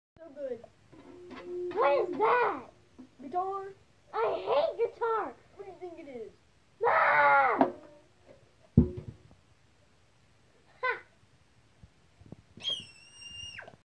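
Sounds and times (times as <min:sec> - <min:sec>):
high-pitched squeal: 0:00.9 - 0:03.0
child wailing: 0:01.2 - 0:02.7, 0:06.8 - 0:08.1
loud thump: 0:08.8 - 0:09.3
short yelp: 0:12.6 - 0:13.7.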